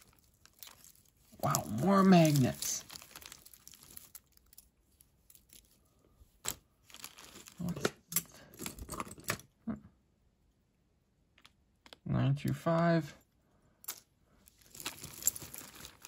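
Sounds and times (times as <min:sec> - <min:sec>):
metal jewelry clinking: 0:00.0 - 0:05.8, 0:13.8 - 0:16.0
rustling and crinkling: 0:00.0 - 0:09.4, 0:14.3 - 0:16.0.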